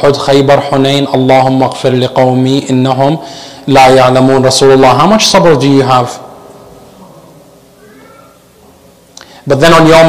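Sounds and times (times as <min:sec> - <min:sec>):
faint high-pitched cry: 0:07.8 - 0:08.4.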